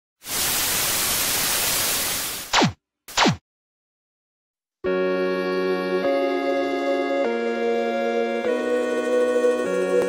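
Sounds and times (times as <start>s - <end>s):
tv static hiss: 0.2s - 2.5s.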